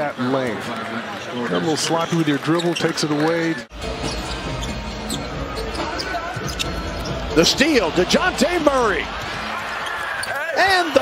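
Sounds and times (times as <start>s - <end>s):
faint arena music: 3.7s - 11.0s.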